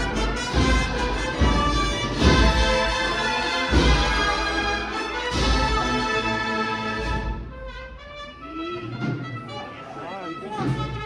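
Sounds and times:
brass band playing a march: 0:00.0 - 0:11.0
voices talking: 0:08.4 - 0:11.0.

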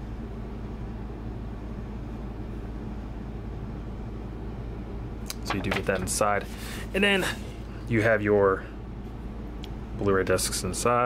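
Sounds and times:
low room tone hum: 0:00.0 - 0:11.0.

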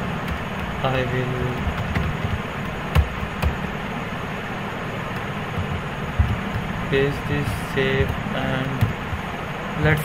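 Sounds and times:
steady background hiss: 0:00.0 - 0:10.0
keyboard clicks: 0:00.2 - 0:03.8.

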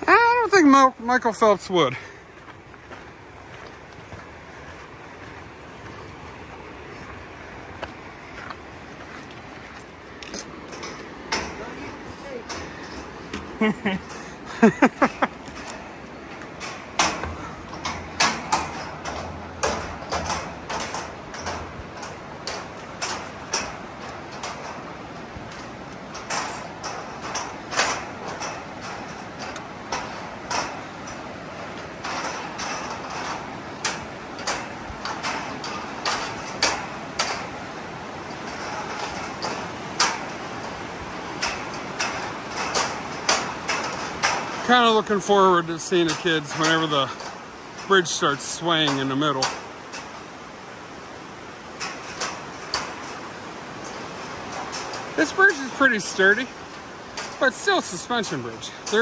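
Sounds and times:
footsteps on metal deck: 0:00.0 - 0:59.0
river rushing: 0:00.0 - 0:59.0.

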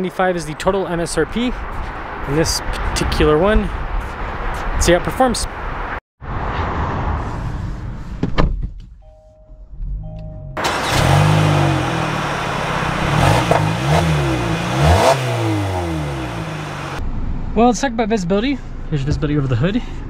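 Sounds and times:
car engine starting and revving: 0:09.9 - 0:17.5.

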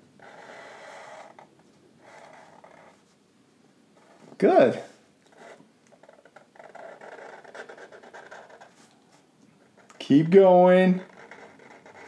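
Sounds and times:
marker drawing on paper: 0:00.2 - 0:03.1, 0:05.3 - 0:09.9, 0:10.9 - 0:12.0.

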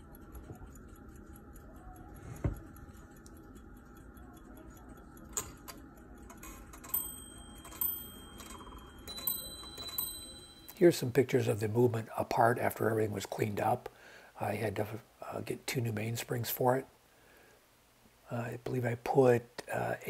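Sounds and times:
clock ticking fast: 0:00.0 - 0:13.8
clock bells striking: 0:06.7 - 0:11.8.

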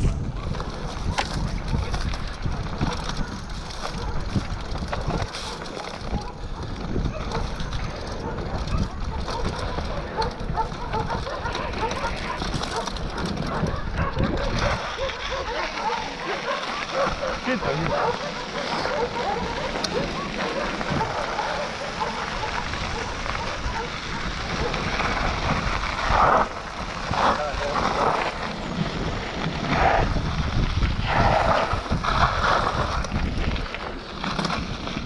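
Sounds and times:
wind rumble on microphone: 0:00.0 - 0:16.2, 0:16.8 - 0:35.0
bike clattering over bumps: 0:00.0 - 0:35.0.

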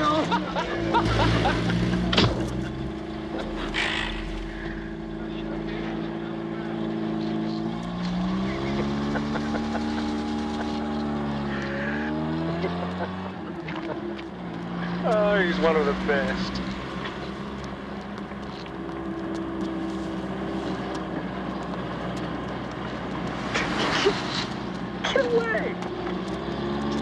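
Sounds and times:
car engine accelerating: 0:00.0 - 0:27.0.

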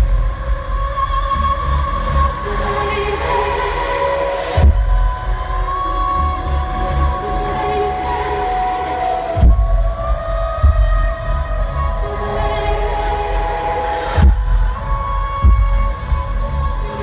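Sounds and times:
live pop music over loudspeakers: 0:00.0 - 0:17.0
deep bass hits: 0:04.6 - 0:05.6, 0:09.4 - 0:12.1, 0:14.2 - 0:16.8.

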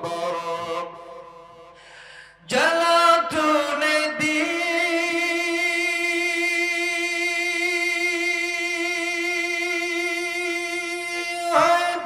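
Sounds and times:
man singing unaccompanied: 0:00.0 - 0:01.4, 0:02.4 - 0:12.0.

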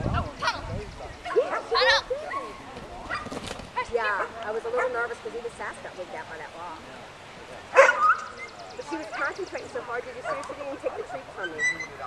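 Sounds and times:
indistinct people's voices: 0:00.0 - 0:12.0
dog barking and yipping: 0:07.8 - 0:08.5, 0:10.2 - 0:10.6.

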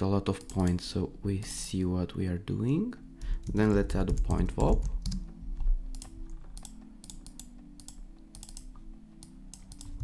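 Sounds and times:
typing on a keyboard: 0:00.4 - 0:00.8, 0:03.4 - 0:05.3, 0:05.9 - 0:10.0.

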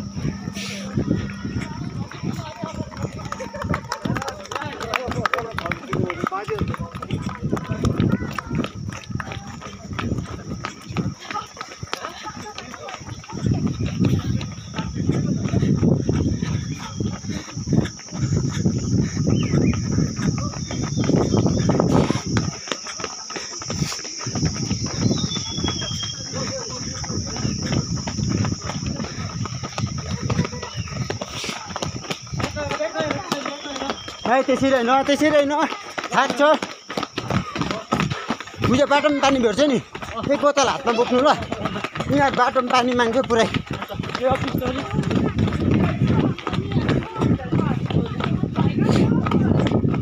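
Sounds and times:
running footsteps on asphalt: 0:00.0 - 0:50.0.

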